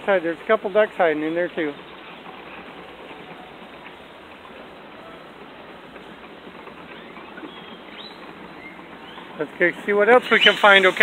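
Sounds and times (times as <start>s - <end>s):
bird chirps: 6.9s - 9.4s, 10.2s - 11.0s.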